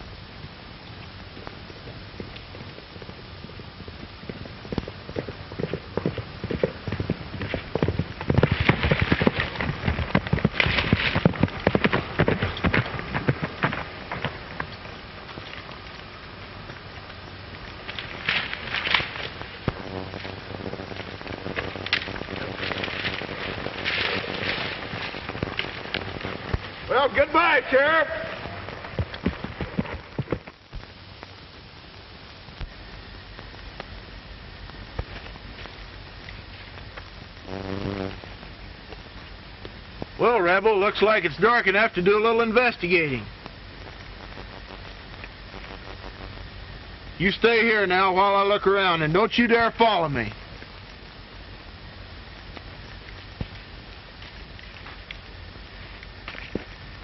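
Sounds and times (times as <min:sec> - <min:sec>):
film soundtrack hiss: 0:00.0 - 0:57.0
horse galloping on dirt: 0:01.3 - 0:31.4.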